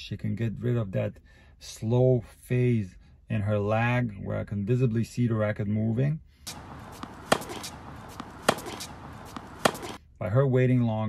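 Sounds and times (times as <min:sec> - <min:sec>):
steady outdoor hiss: 0:06.4 - 0:10.0
tennis ball impacts: 0:06.5 - 0:10.0.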